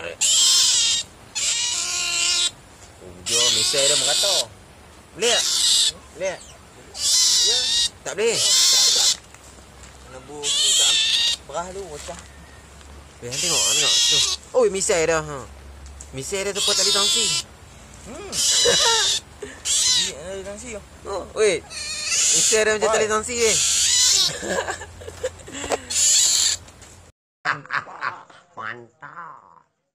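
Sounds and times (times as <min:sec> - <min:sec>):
otter pup shrill call: 0:00.2 - 0:02.6, 0:03.3 - 0:04.5, 0:05.2 - 0:09.2, 0:10.3 - 0:11.4, 0:13.3 - 0:14.5, 0:16.5 - 0:17.5, 0:18.3 - 0:20.2, 0:21.6 - 0:24.4, 0:25.9 - 0:26.6
person speaking: 0:13.2 - 0:23.6.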